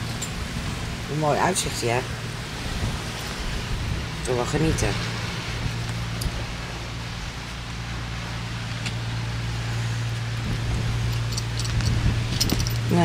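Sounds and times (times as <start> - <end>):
boat engine humming: 0.0 - 13.0
wind and water rushing: 0.0 - 13.0.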